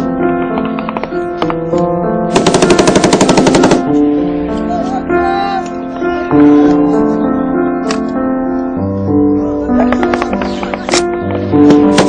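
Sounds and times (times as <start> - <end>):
background keyboard music: 0.0 - 12.0
automatic gunfire: 2.3 - 3.9.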